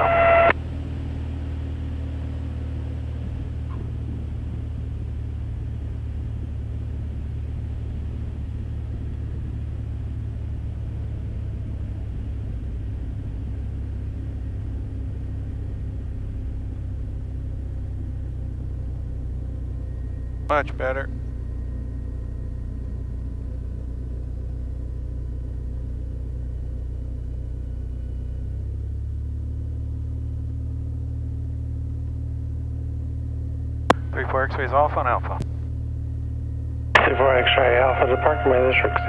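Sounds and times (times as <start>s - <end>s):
aircraft engine drone: 0.0s - 39.0s.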